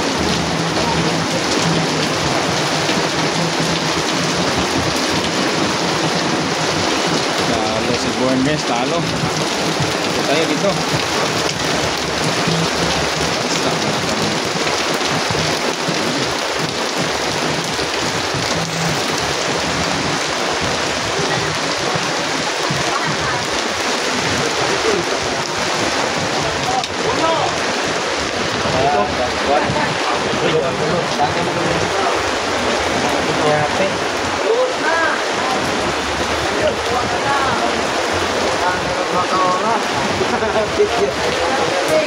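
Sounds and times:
crowd voices: 0.0 - 42.0.

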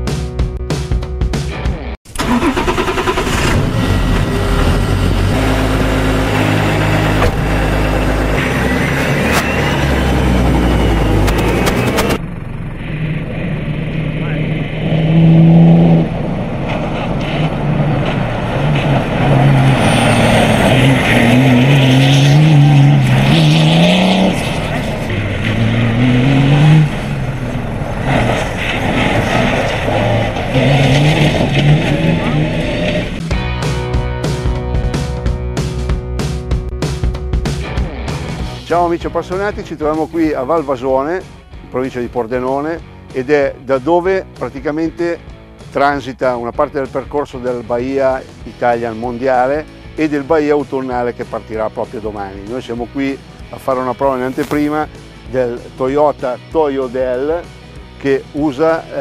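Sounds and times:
music: 0.0 - 3.1, 31.6 - 59.0
car engine accelerating on gravel: 2.2 - 33.3, 53.7 - 55.0.

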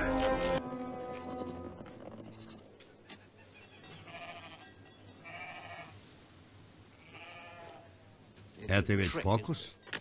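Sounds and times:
wavering animal bleats: 0.0 - 2.7, 3.7 - 6.0, 7.0 - 7.9.

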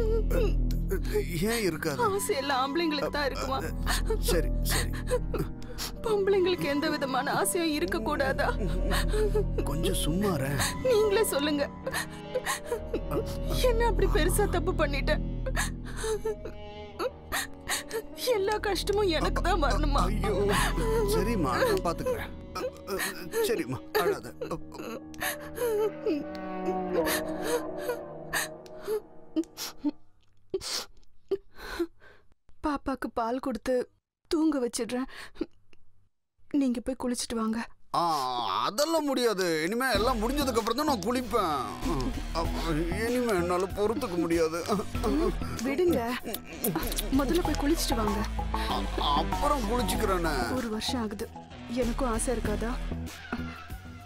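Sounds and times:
woman crying and sobbing: 0.0 - 1.4, 2.0 - 32.0, 43.9 - 47.7
background music with held notes: 0.0 - 29.9, 39.9 - 54.0.

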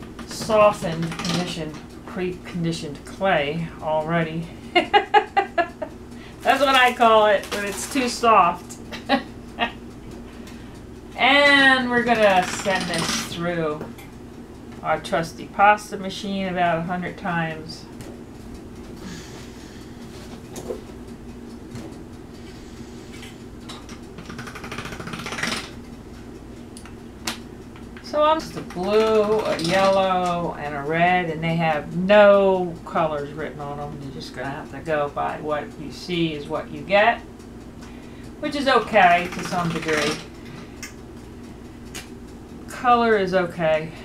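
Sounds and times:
room hum: 0.0 - 44.0
pasta machine whirring and rattling: 22.5 - 25.8.

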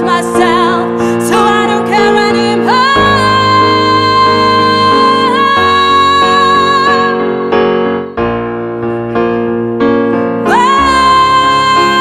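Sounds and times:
digital piano sustained chords: 0.0 - 12.0.

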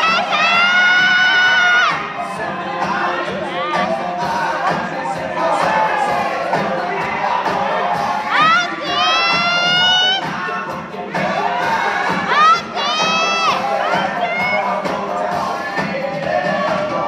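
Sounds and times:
audience cheering and shouting: 0.0 - 17.0.

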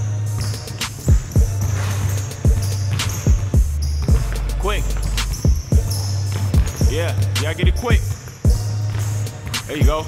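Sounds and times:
song with heavy bass: 0.0 - 10.0
basketball bouncing on hard court: 0.3 - 10.0.

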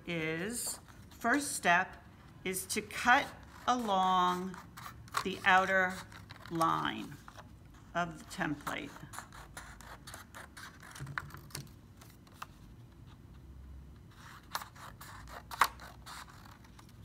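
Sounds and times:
scissors snipping paper: 3.0 - 6.8, 14.3 - 16.9.

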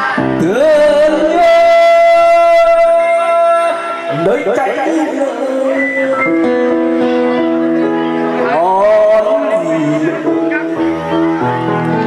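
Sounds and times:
man singing into microphone: 0.0 - 11.0
karaoke backing music: 0.0 - 12.0.

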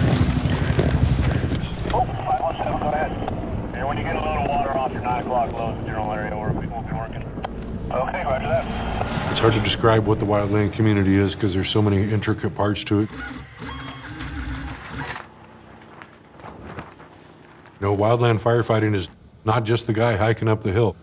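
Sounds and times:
low rumble: 0.0 - 11.9
helicopter rotor and engine: 0.0 - 16.5
voice chatter over radio: 1.6 - 7.3.

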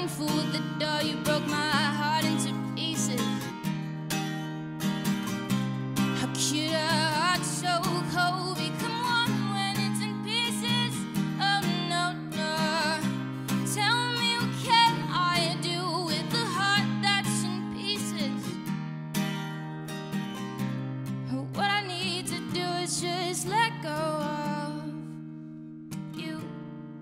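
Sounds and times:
woman singing with vibrato: 0.0 - 3.5, 6.1 - 18.6, 21.3 - 25.0
strummed acoustic guitar: 0.0 - 27.0.

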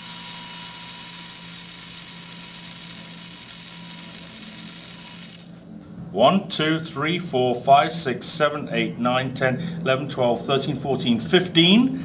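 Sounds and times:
very high-pitched whine: 0.0 - 12.0
salt grains rattling on metal: 1.8 - 5.6.

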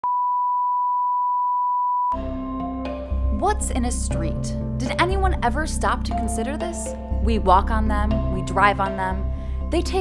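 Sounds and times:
sine-wave reference tone: 0.0 - 2.2.

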